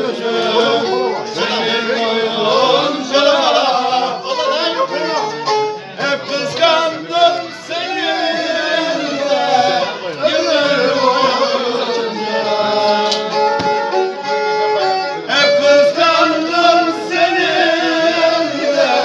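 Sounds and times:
men singing together: 0.0s - 5.4s, 6.0s - 13.5s, 15.3s - 19.0s
bowed fiddle folk melody: 0.0s - 19.0s.

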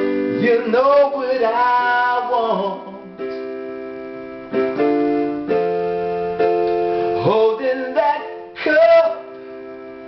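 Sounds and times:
electronic keyboard chords: 0.0s - 10.0s.

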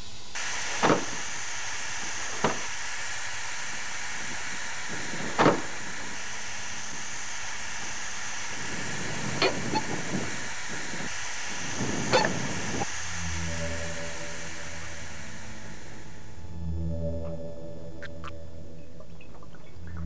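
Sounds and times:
steady hiss: 0.0s - 16.6s
low sustained music notes: 12.8s - 20.0s.

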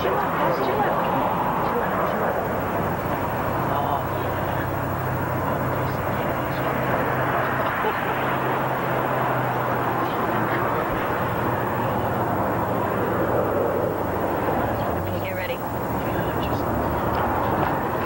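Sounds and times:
car engine droning: 0.0s - 18.0s
road and wind noise: 0.0s - 18.0s.

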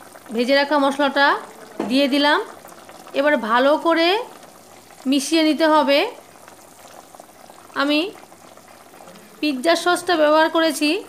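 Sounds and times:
curry bubbling in a pan: 0.0s - 11.0s.

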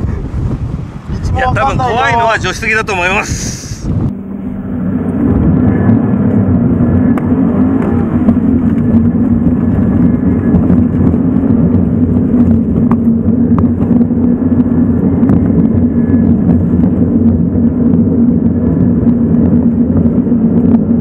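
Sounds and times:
car engine under load: 3.9s - 21.0s.

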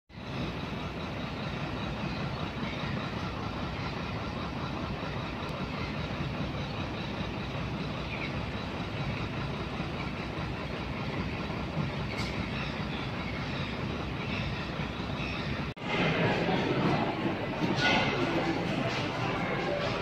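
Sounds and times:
low outdoor rumble: 0.1s - 20.0s.

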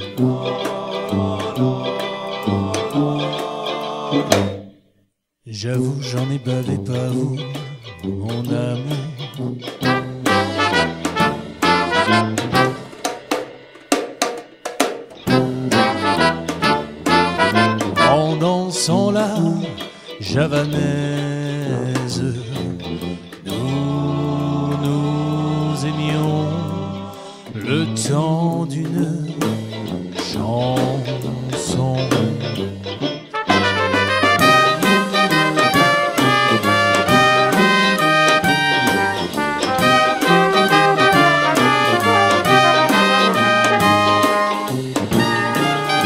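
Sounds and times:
drum kit: 0.0s - 3.5s, 8.9s - 18.6s, 27.5s - 46.0s
swing band playing: 0.0s - 4.5s, 6.7s - 46.0s
person singing: 0.0s - 4.6s, 5.5s - 11.0s, 15.3s - 46.0s
banjo strumming: 0.0s - 4.8s, 6.0s - 13.6s, 15.1s - 46.0s
sousaphone bass notes: 33.4s - 46.0s
sharp drum hits: 33.5s - 46.0s.

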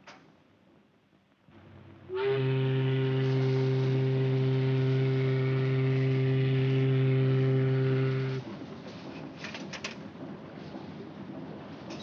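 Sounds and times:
ship's whistle blast: 2.1s - 8.4s.

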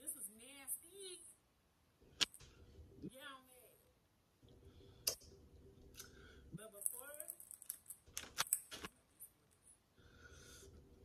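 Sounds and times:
plastic chip bag crinkling: 6.9s - 8.9s.

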